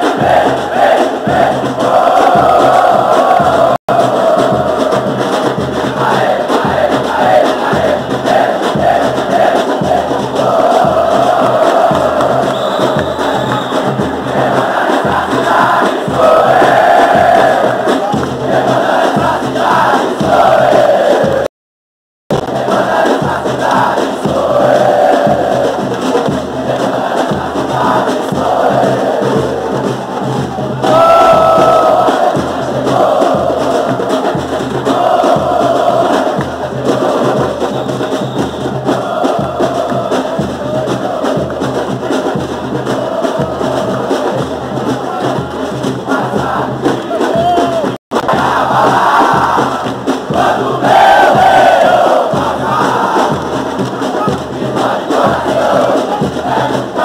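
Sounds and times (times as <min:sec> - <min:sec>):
football crowd chanting: 0:00.0 - 0:21.5, 0:22.3 - 0:57.0
steady drumbeat: 0:00.0 - 0:21.5, 0:22.3 - 0:57.0.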